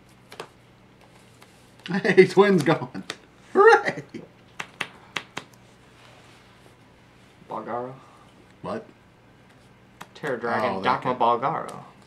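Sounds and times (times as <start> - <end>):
cards tapped on tabletop: 4.6 - 5.5.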